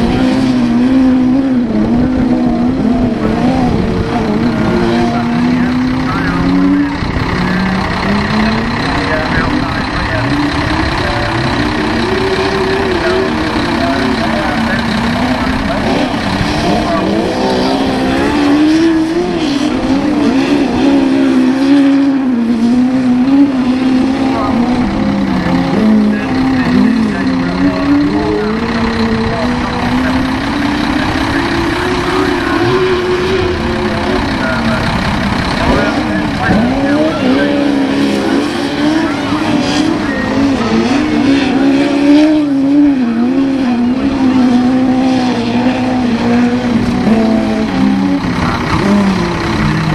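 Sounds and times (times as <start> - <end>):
racing car engines revving: 0.0 - 49.9.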